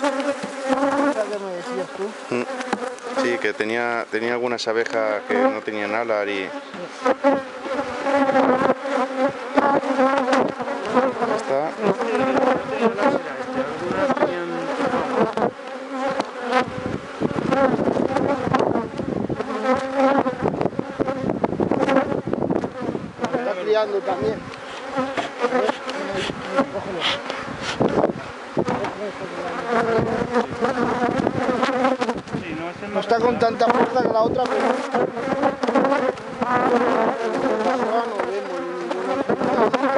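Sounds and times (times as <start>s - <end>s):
honeybees buzzing: 0.0s - 39.9s
sharp knocks: 25.1s - 26.0s.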